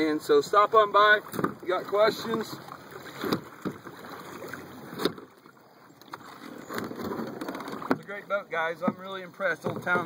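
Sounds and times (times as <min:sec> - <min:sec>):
paddle splashing in water: 0:00.0 - 0:10.0.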